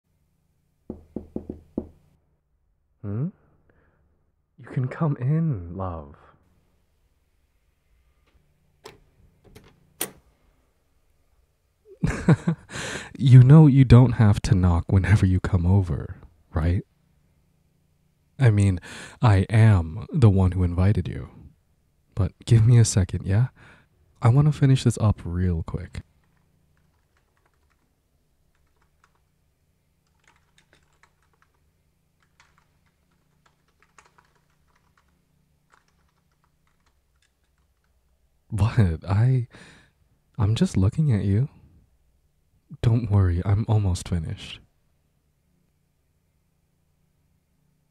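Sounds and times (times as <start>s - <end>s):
faint keyboard typing: 26.0s - 38.3s.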